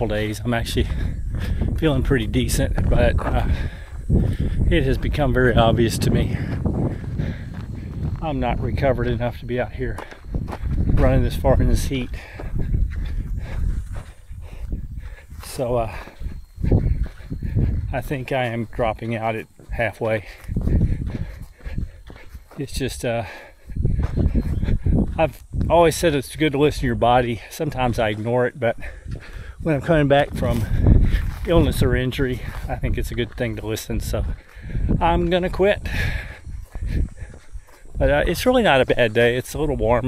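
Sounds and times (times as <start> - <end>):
runner breathing heavily: 0.0 - 40.0
soft footfalls on dirt trail: 0.0 - 40.0
wind rumbling on microphone: 0.0 - 40.0
man breathing hard: 0.8 - 1.8, 3.2 - 4.8, 6.0 - 8.2, 12.1 - 17.9, 20.2 - 22.6, 23.2 - 25.2, 28.8 - 29.6, 30.6 - 31.4, 34.2 - 35.0, 35.8 - 38.0.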